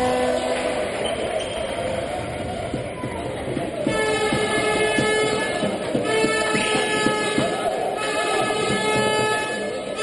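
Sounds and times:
horn long steady note: 0:00.0 - 0:01.0, 0:03.8 - 0:10.0
crowd noise: 0:00.0 - 0:10.0
steady beat: 0:02.7 - 0:10.0.

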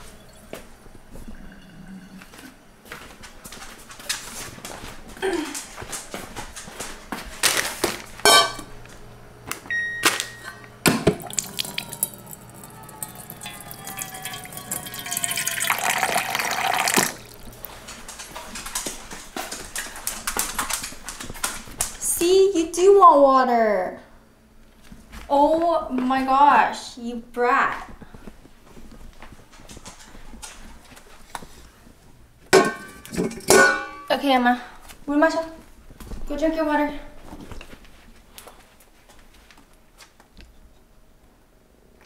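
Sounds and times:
water pouring into a bowl: 0:11.2 - 0:17.5.

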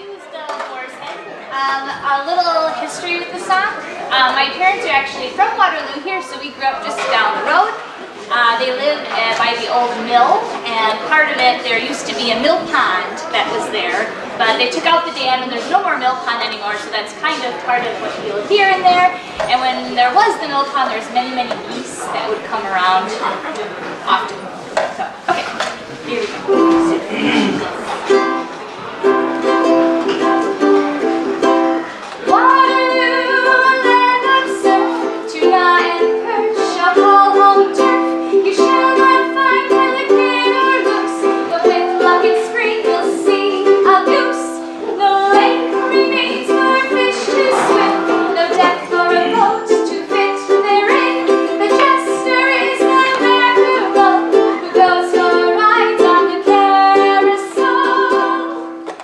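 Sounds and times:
plucked string instrument strummed: 0:26.5 - 0:59.0
woman singing: 0:32.3 - 0:58.8.

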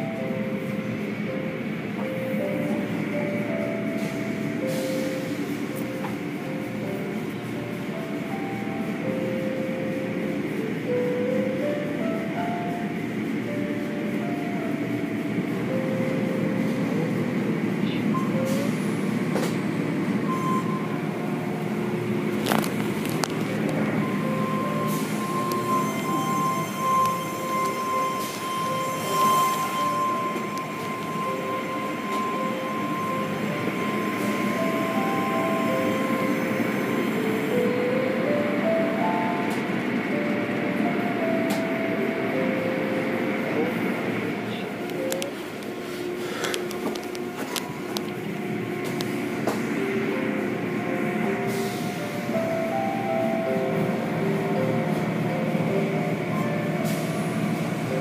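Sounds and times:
steady high tone: 0:00.0 - 0:58.0.

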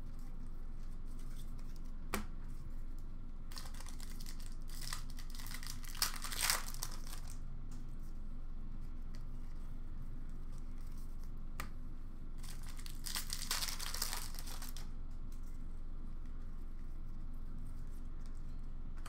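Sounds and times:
wrapper tearing and crinkling: 0:03.5 - 0:07.4, 0:12.4 - 0:14.8.

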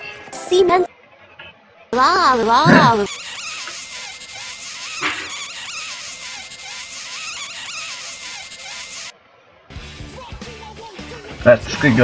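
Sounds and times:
buzzy warbling tone: 0:02.0 - 0:09.1.

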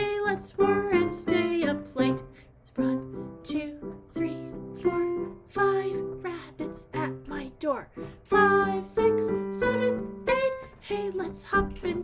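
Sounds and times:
digital piano melody: 0:00.0 - 0:12.0.

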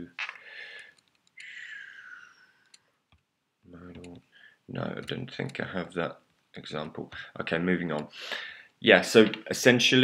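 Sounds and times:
breathy hisses: 0:00.4 - 0:02.6.

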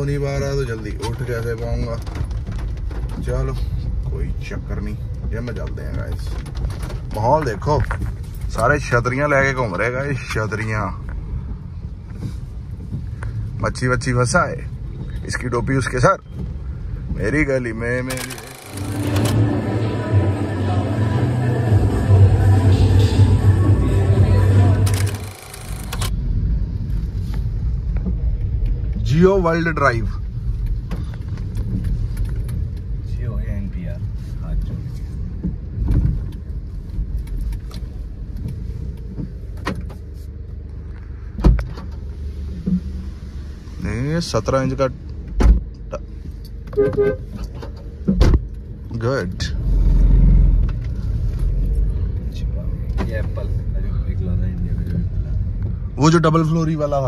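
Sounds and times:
car cabin road rumble: 0:00.0 - 0:57.0.

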